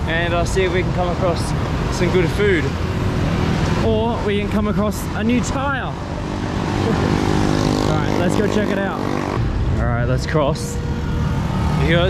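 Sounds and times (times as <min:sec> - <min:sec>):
tyre and road noise: 0:00.0 - 0:12.0
vehicle engine drone: 0:00.0 - 0:12.0.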